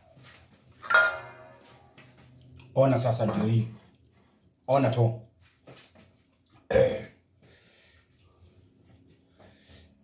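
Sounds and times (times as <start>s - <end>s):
man burping: 6.6s - 7.2s.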